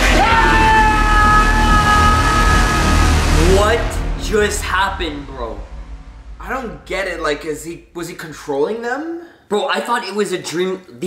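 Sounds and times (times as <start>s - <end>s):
high held tones: 0.0s - 8.6s
dense noisy rumble: 0.0s - 8.7s
man talking: 3.3s - 5.8s, 6.4s - 11.0s.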